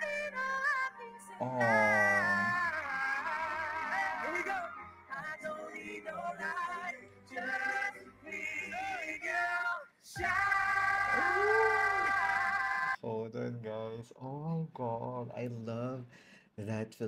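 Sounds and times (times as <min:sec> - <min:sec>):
backing music: 0:00.0 - 0:13.0
men singing pop: 0:01.4 - 0:13.6.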